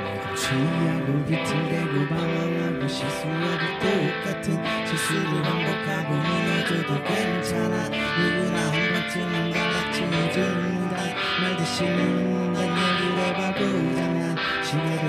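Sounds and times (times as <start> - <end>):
rock band playing live: 0.0 - 15.0.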